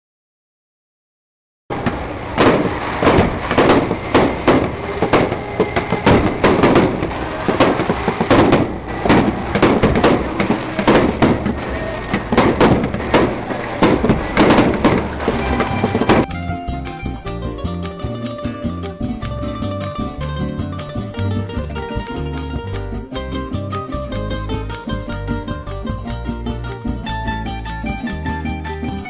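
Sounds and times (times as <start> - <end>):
fireworks bangs: 1.8 - 14.6
fireworks crackling: 15.3 - 20.0
plucked-string music: 15.3 - 29.0.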